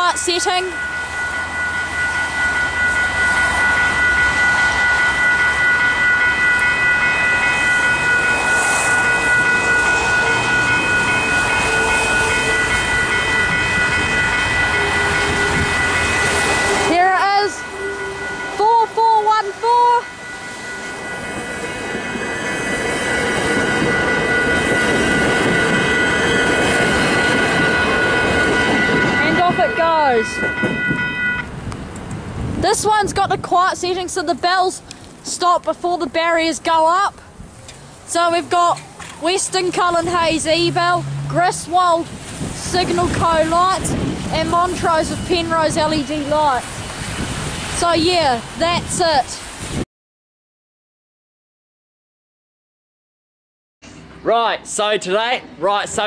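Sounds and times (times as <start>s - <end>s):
level crossing bells ringing: 0.0s - 31.7s, 32.6s - 37.2s, 37.8s - 46.9s, 47.6s - 49.4s
train passing: 0.0s - 49.8s, 53.8s - 56.0s.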